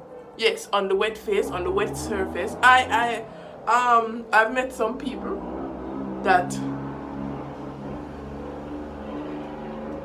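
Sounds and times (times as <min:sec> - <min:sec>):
vehicle engine droning: 0:00.0 - 0:10.0.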